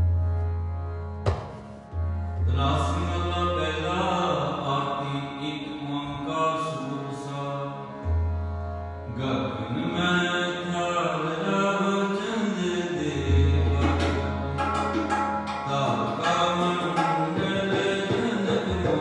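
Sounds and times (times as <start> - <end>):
harmonium: 0.0 - 19.0.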